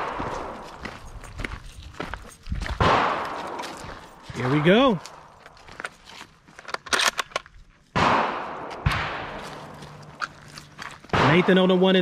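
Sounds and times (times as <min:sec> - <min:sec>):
gunshots with echo: 0:02.8 - 0:05.3, 0:08.0 - 0:10.2, 0:11.1 - 0:12.0.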